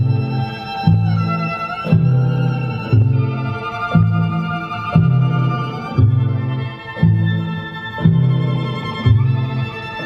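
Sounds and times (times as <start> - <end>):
band with bowed violins: 0.0 - 10.0.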